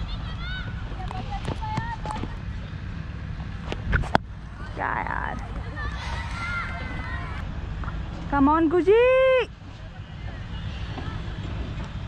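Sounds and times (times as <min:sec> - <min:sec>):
low wind rumble on microphone: 0:00.0 - 0:09.9
distant players shouting: 0:05.0 - 0:07.5.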